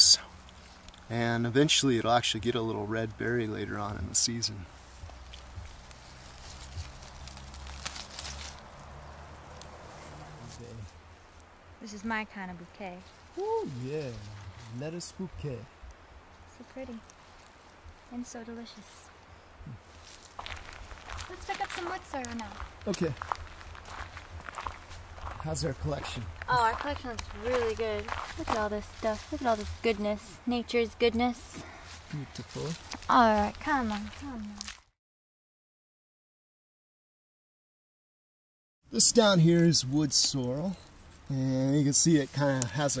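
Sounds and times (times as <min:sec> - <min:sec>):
leaves and stems rustling: 0:00.0 - 0:34.9, 0:39.1 - 0:43.0
footsteps on dirt road: 0:04.6 - 0:10.8, 0:19.8 - 0:30.2, 0:31.4 - 0:34.9.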